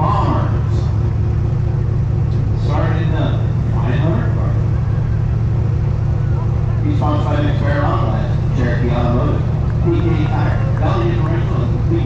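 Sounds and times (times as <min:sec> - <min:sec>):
race car engine idling: 0:00.0 - 0:12.0.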